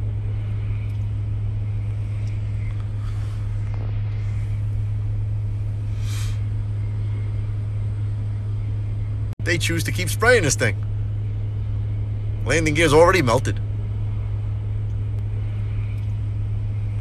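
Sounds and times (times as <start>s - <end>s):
low engine hum: 0.0s - 17.0s
brief hiss: 5.9s - 6.5s.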